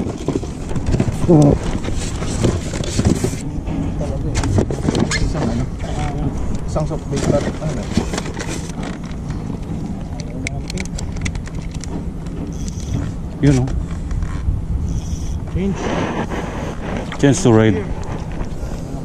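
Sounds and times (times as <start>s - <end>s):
boat motor humming: 0.0s - 19.0s
people talking: 1.2s - 1.7s, 3.4s - 8.0s, 9.9s - 11.0s, 13.4s - 13.8s, 15.5s - 16.3s, 17.0s - 18.0s.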